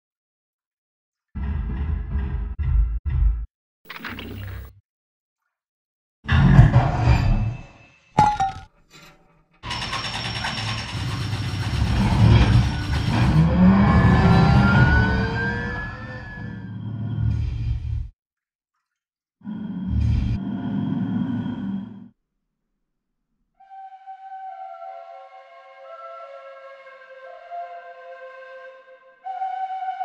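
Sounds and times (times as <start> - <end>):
film music and sound effects: 1.3 - 4.8, 6.3 - 18.1, 19.4 - 22.2, 23.5 - 30.0
low rumbling passage: 1.4 - 3.5, 11.7 - 18.1, 19.5 - 22.1.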